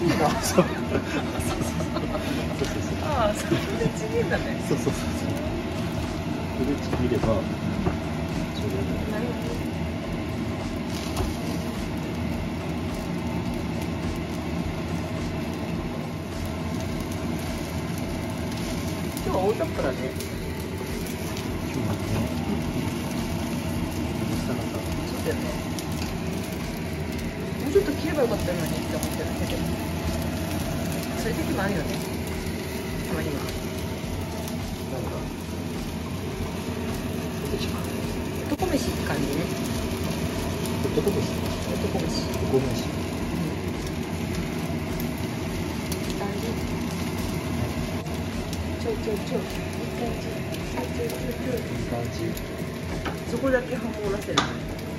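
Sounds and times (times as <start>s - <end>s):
low drone: 0.0s - 54.9s
rice sizzling in a frying pan: 0.0s - 54.9s
steady low rumble: 0.0s - 54.9s.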